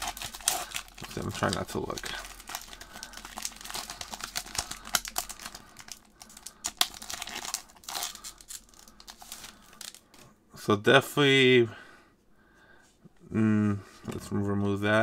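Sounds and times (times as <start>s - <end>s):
foil wrapper crinkling and tearing: 0.0s - 10.2s.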